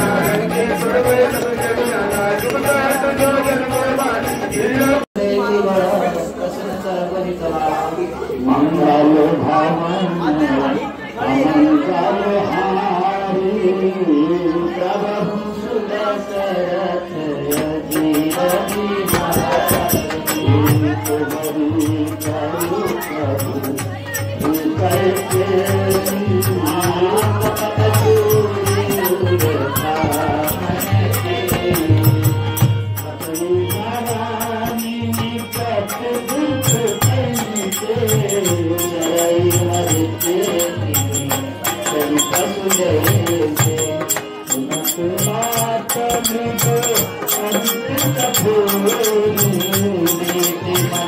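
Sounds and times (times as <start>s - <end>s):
group singing held notes: 0.0s - 5.1s, 11.2s - 51.0s.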